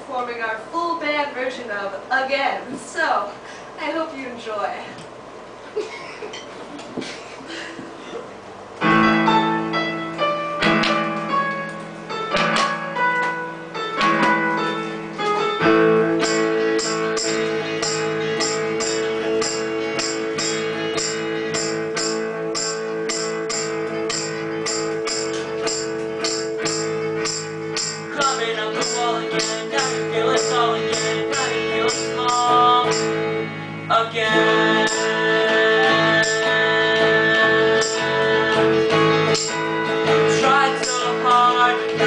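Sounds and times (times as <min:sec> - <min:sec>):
rock band playing: 0:08.8 - 0:42.0.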